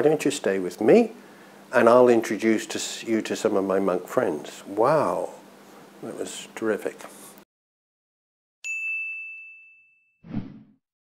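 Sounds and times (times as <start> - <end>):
bright chime ding: 8.6 - 10.2.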